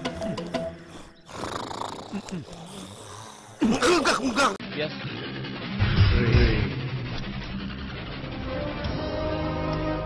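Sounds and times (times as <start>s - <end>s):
rough snoring-like vocal sounds: 1.0s - 3.8s.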